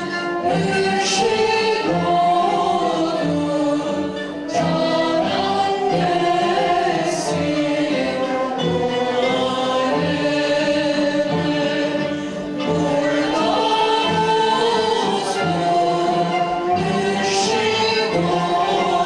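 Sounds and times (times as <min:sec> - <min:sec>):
keyboard and plucked strings: 0:00.0 - 0:19.0
people singing: 0:00.0 - 0:19.0.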